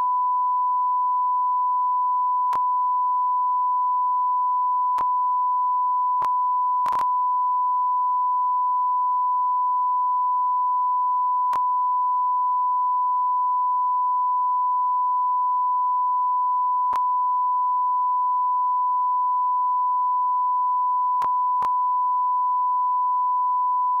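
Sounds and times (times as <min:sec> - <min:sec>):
steady sine test tone: 0:00.0 - 0:24.0.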